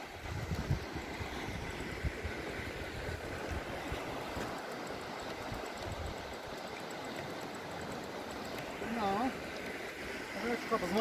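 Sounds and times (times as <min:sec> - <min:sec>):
river water rushing: 0:00.0 - 0:11.0
wind buffeting microphone: 0:00.2 - 0:04.1.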